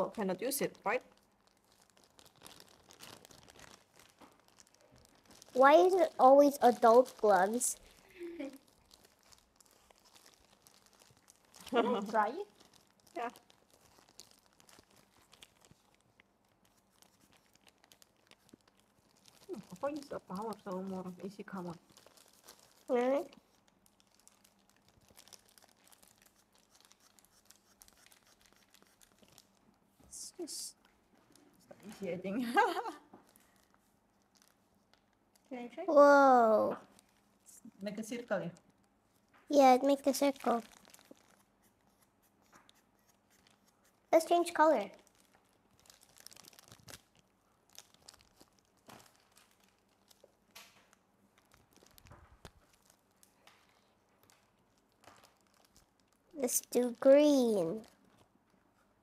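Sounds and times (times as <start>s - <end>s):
plastic gloves crinkling: 0.0s - 59.0s.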